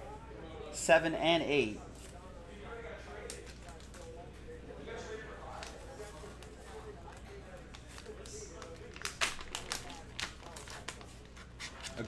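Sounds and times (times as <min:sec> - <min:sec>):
foil pack tearing and crinkling: 0:08.0 - 0:11.0.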